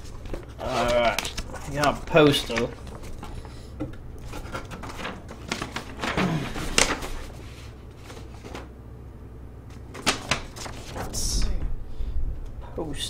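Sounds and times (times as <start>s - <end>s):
paper rustling and crinkling: 0.0s - 8.7s, 9.7s - 11.6s.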